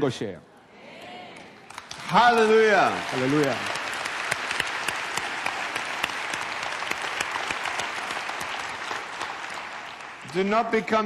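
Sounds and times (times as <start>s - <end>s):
audience applauding: 1.4s - 11.0s.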